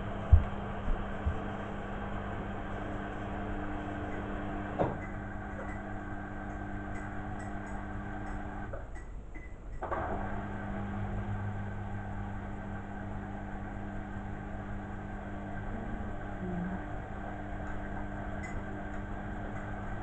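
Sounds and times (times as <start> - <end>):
washing machine motor hum: 0.0 - 20.0.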